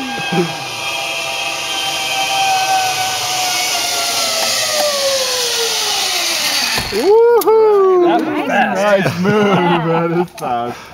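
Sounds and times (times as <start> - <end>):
zip-line pulleys whining on cable: 0.0 - 7.8.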